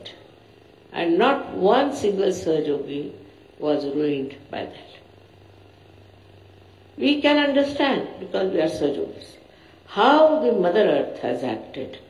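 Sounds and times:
background hiss: 0.0s - 12.0s
low steady hum: 0.0s - 12.0s.

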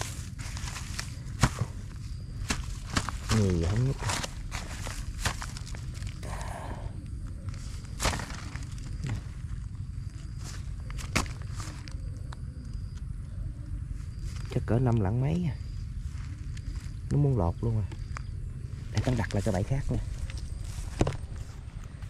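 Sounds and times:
rustling in grass: 0.0s - 6.5s, 7.3s - 12.1s, 15.7s - 17.0s, 18.6s - 22.0s.

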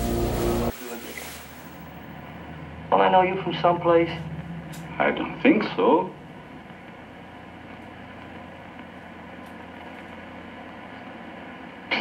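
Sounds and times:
film soundtrack hiss: 0.0s - 3.6s.

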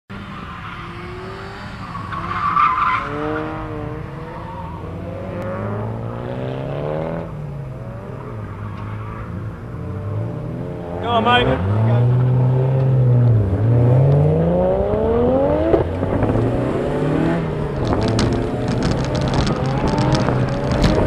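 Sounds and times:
car engine revving: 0.1s - 21.0s
tyre squeal: 0.3s - 4.9s.

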